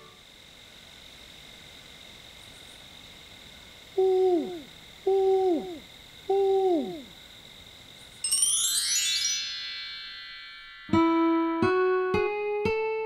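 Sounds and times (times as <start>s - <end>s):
owl hoots: 4.0s - 7.1s.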